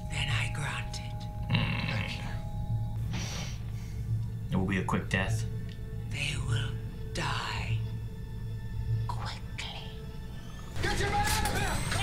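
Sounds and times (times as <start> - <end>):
dramatic music drone: 0.0 - 12.0.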